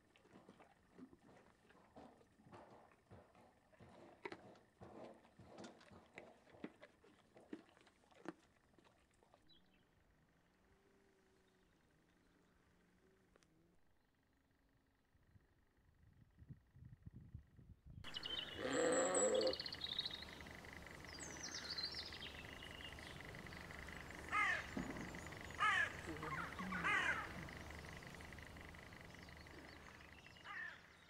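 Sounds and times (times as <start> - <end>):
small birds singing: 18.1 - 31.0
crows cawing: 23.8 - 28.7, 29.5 - 31.0.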